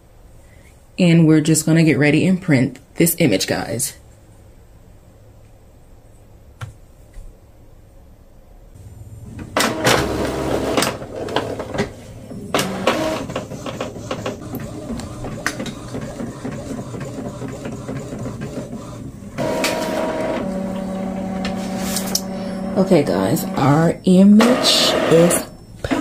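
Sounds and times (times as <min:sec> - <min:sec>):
printer motor whine: 0:08.8 - 0:26.0.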